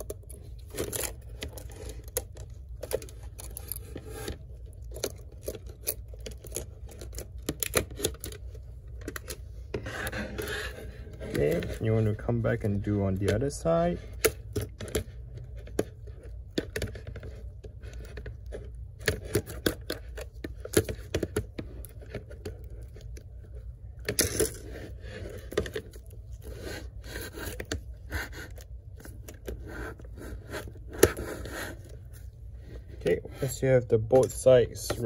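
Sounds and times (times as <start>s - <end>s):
metal laptop parts clicking and scraping: 0.0s - 35.0s.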